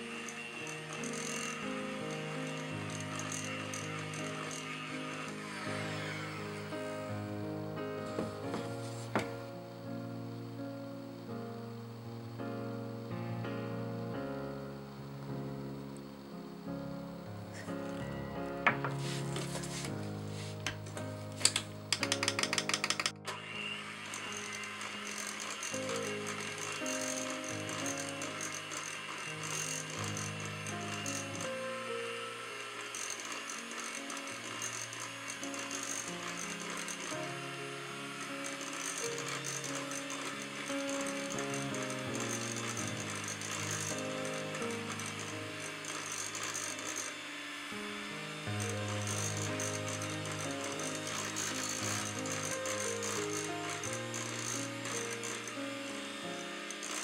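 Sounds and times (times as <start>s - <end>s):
electric hand mixer running: 0.0s - 10.5s, 17.1s - 57.0s
background music: 0.0s - 57.0s.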